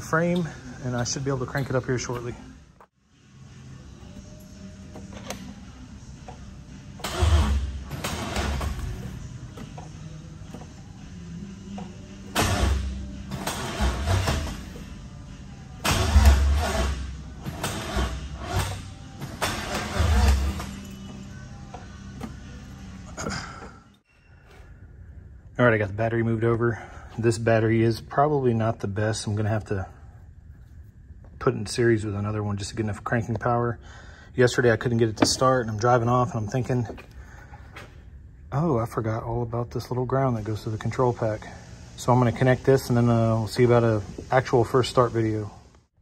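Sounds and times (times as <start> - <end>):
background music: 0.0 - 30.8
engine starter cranking: 7.0 - 9.0.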